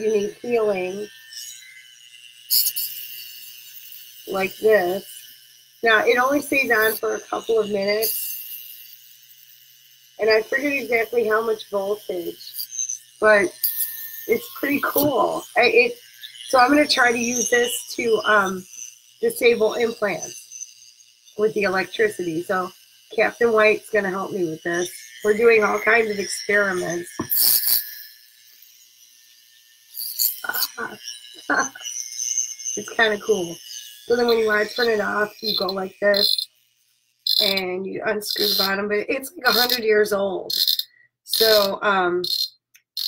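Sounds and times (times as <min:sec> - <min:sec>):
high-pitched electrical buzzing hiss: 0:00.0 - 0:43.0.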